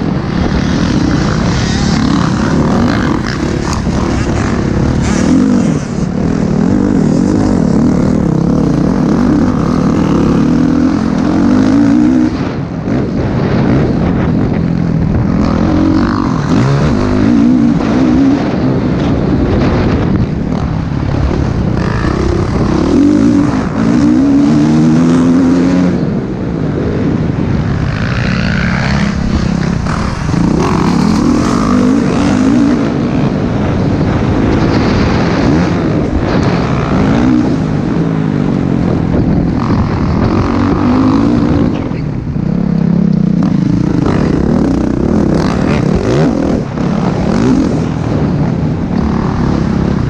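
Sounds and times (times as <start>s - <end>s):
motocross bike engine revving: 0.0s - 50.0s.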